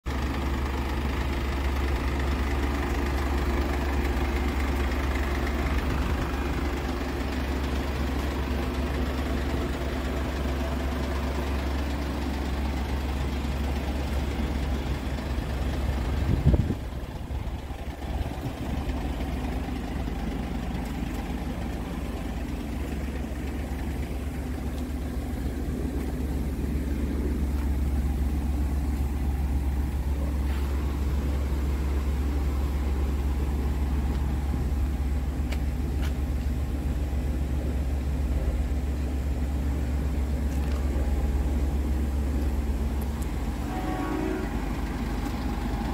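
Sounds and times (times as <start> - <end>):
diesel engine idling: 0.0 - 45.9.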